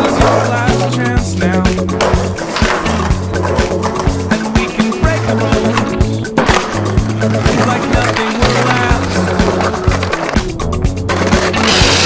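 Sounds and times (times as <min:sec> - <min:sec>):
music with drum beat and bass: 0:00.0 - 0:12.0
skateboard sounds: 0:00.0 - 0:12.0.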